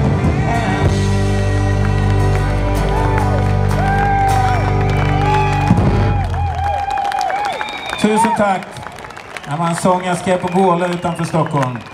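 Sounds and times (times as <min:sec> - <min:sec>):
live band held chord: 0:00.0 - 0:06.5
audience cheering and clapping: 0:00.0 - 0:11.9.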